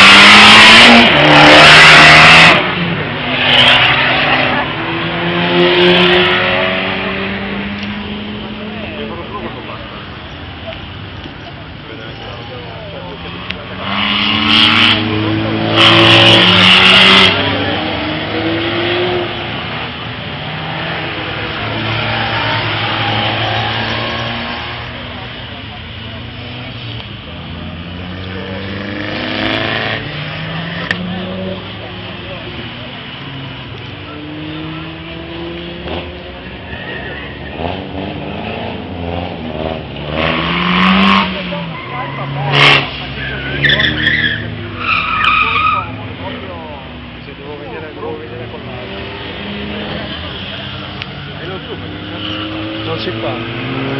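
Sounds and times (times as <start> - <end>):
car engines revving: 0.0 - 53.9
tyre squeal: 41.7 - 46.0.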